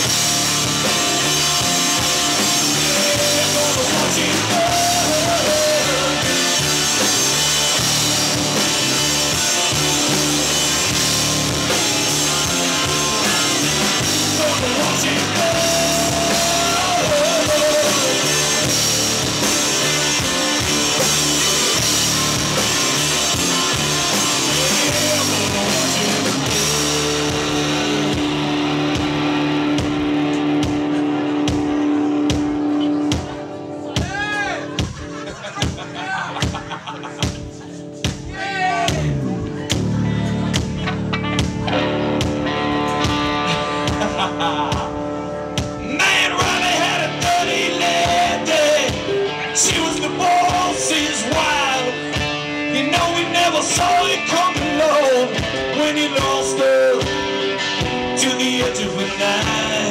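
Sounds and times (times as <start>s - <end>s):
electric guitar lead line bending: 0.0s - 35.9s, 38.9s - 59.9s
drum kit: 0.0s - 59.9s.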